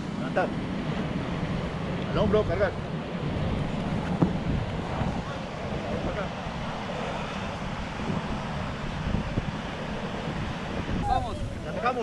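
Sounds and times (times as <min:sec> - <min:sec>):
surf breaking on beach: 0:00.0 - 0:12.0
wind buffeting microphone: 0:00.0 - 0:12.0.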